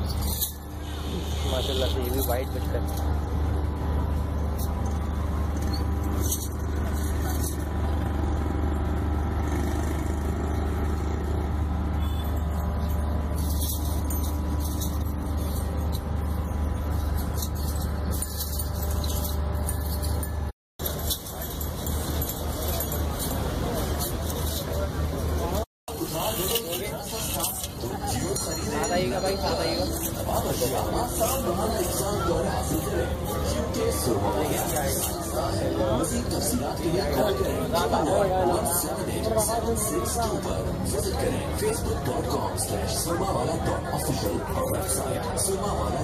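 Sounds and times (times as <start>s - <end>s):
people's voices: 0.0s - 11.8s, 20.8s - 46.0s.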